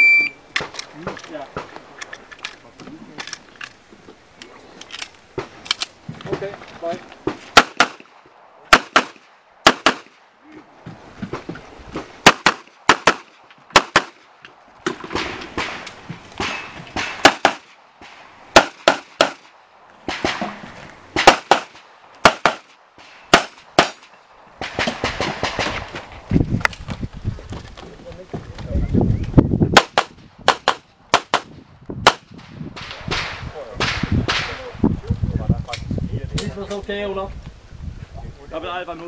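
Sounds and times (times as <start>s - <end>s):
pistol firing rapid shots: 7.5s - 8.1s, 8.7s - 10.2s, 12.2s - 14.2s, 16.4s - 17.7s, 18.5s - 19.5s, 21.2s - 22.7s, 23.3s - 24.0s, 29.8s - 32.3s.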